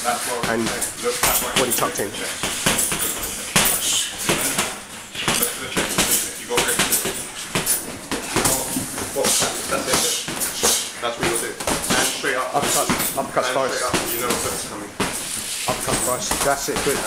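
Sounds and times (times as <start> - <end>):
boxing gloves smacking: 2.4 - 17.0.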